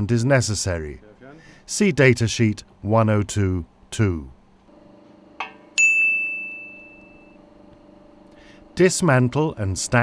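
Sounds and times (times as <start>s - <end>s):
metallic ding ringing: 5.4s - 7.4s.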